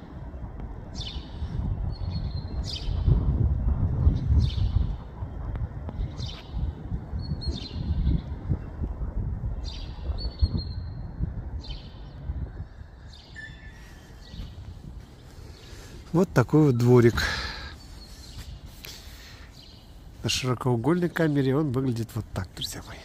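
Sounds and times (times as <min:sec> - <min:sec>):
small bird chirping: 0:13.1 - 0:14.7.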